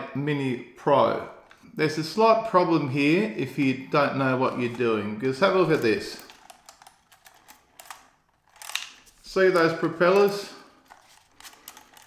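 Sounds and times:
plastic propellers clicking: 4.5 - 12.0.

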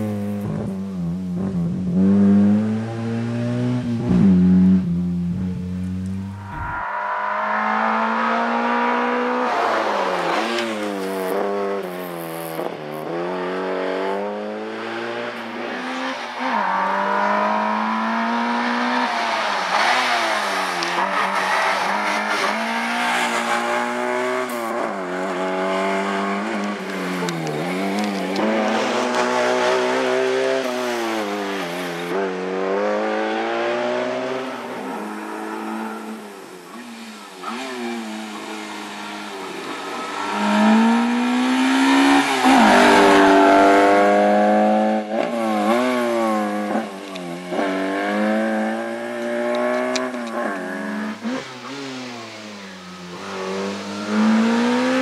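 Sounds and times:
car engine revving hard: 12.5 - 36.3, 37.4 - 55.0.

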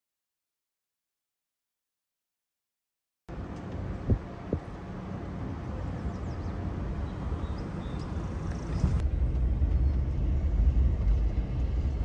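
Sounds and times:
engine and road rumble: 3.3 - 12.0.

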